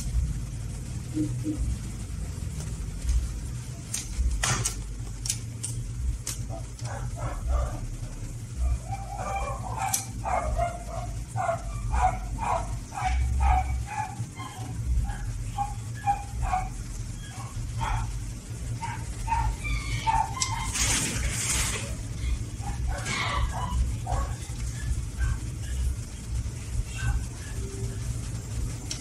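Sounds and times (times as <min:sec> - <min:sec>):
steady low hum: 0:00.0 - 0:29.0
dog barking: 0:06.5 - 0:07.8, 0:08.6 - 0:21.0, 0:22.6 - 0:25.8.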